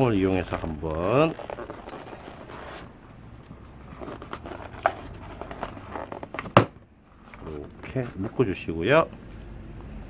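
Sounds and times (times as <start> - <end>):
rubber balloons rubbing: 0.0 - 8.4.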